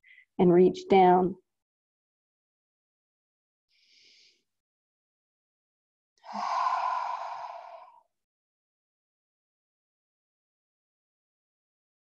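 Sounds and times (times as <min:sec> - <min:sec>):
long sighing exhale: 0:06.2 - 0:08.1.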